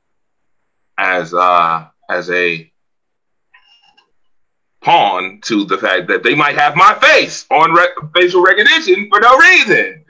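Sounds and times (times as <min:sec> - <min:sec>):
person speaking: 0:01.0 - 0:02.6, 0:04.8 - 0:10.0.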